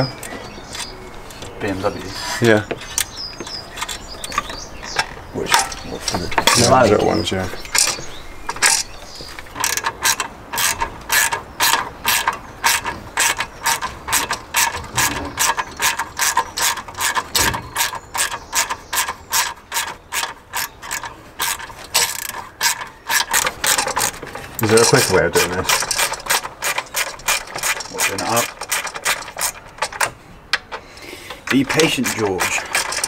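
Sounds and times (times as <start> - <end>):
hand ratchet clicking: 9.6 - 33.0.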